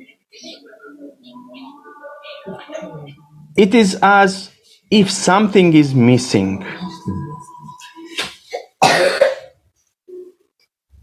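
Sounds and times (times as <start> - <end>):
person coughing harshly: 8.4 - 9.6.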